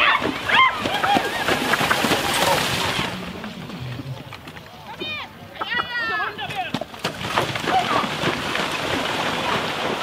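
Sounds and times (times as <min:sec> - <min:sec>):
hooves and wheels splashing through water: 0:00.0 - 0:10.0.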